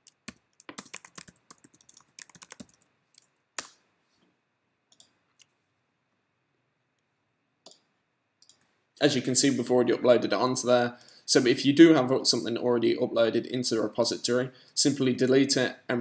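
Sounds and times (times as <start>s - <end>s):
computer keyboard typing: 0.0s - 3.7s.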